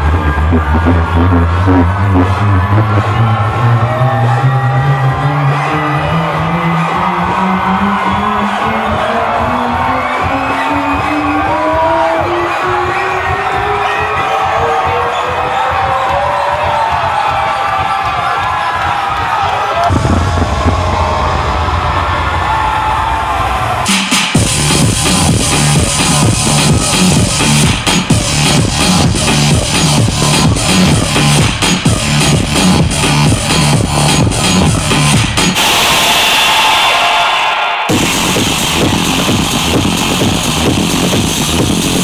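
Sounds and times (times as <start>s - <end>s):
crowd cheering and whooping: 0.0s - 42.0s
electronic dance music: 0.0s - 42.0s
heavy bass: 0.0s - 42.0s
rising synth sweep: 19.9s - 24.0s.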